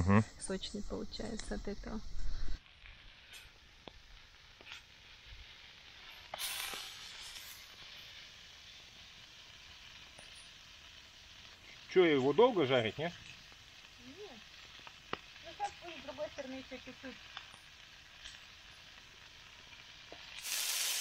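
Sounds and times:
meat patties sizzling in a pan: 0:02.6 - 0:21.0.

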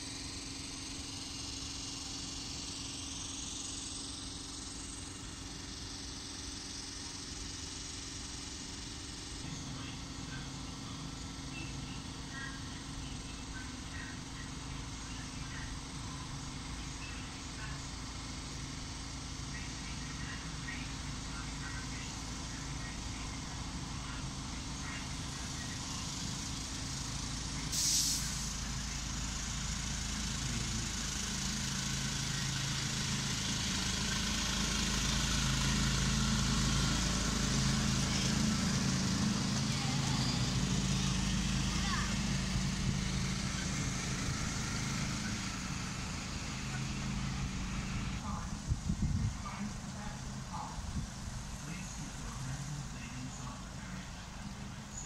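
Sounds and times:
small locomotive engine running: 0:00.0 - 0:55.0
brief hiss: 0:27.7 - 0:28.6.

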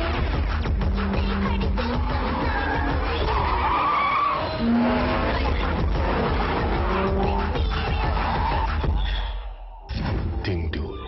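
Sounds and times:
music with low bass: 0:00.0 - 0:03.1, 0:05.2 - 0:09.1
car tyres squealing: 0:01.8 - 0:09.3.

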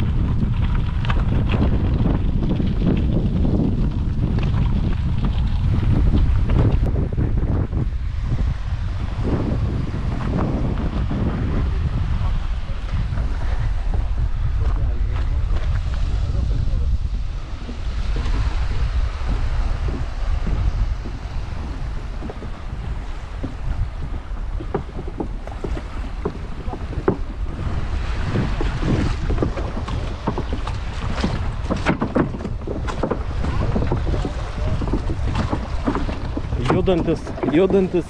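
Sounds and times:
footsteps on wooden boards: 0:00.0 - 0:16.1, 0:16.8 - 0:38.0
waves splashing against pier: 0:00.0 - 0:38.0
wind buffeting microphone: 0:00.0 - 0:38.0.

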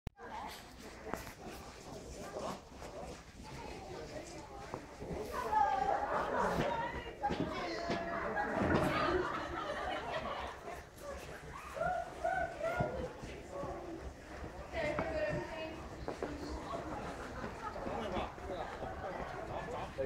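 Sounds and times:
people talking: 0:00.2 - 0:20.0.

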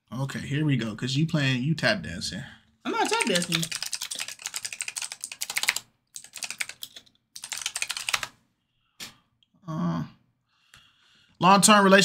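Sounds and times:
fast typing on computer keyboard: 0:02.9 - 0:08.4.

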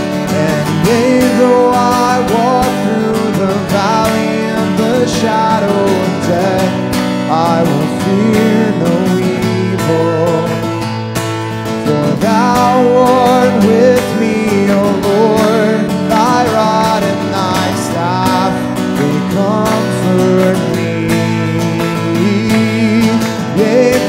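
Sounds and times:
man singing: 0:00.0 - 0:10.9, 0:11.7 - 0:24.0
acoustic guitar strumming chords: 0:00.0 - 0:24.0.

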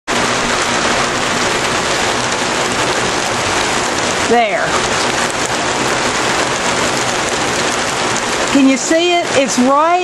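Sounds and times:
steady rain: 0:00.1 - 0:10.0
water spilling off a gutter: 0:00.1 - 0:10.0.

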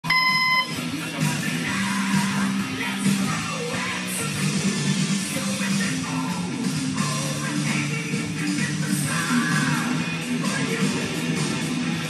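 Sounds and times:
short electronic beep: 0:00.0 - 0:00.8
rock music with guitar: 0:00.0 - 0:12.0.

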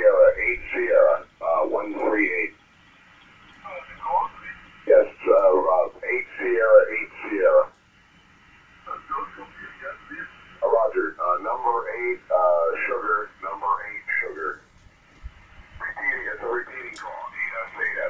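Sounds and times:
clipped radio voices: 0:00.0 - 0:18.0
faint radio hiss: 0:00.0 - 0:18.0.

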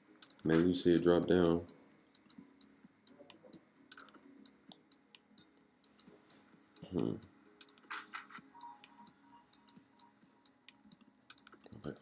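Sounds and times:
computer mouse clicking: 0:03.4 - 0:04.6, 0:07.5 - 0:09.8, 0:10.6 - 0:11.9.

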